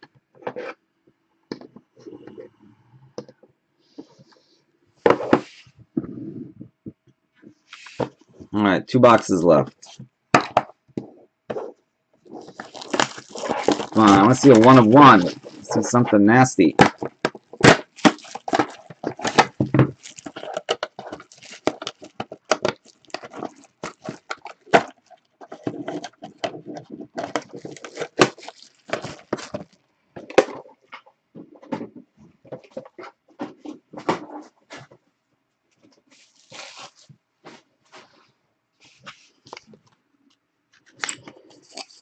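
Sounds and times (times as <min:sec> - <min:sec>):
plastic wrapping crinkling: 0:12.2 - 0:30.6, 0:36.1 - 0:37.2, 0:40.7 - 0:42.0.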